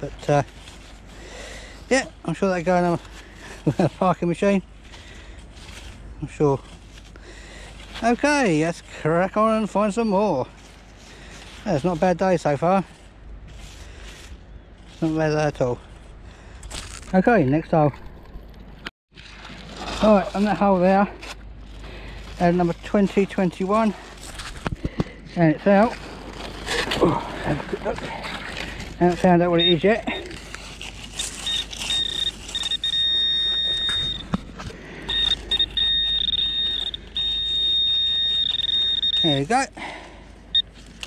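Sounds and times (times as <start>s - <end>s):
low outdoor rumble: 0.0s - 41.0s
metal detector beeping tone: 29.1s - 30.4s, 31.4s - 34.4s, 35.0s - 39.7s.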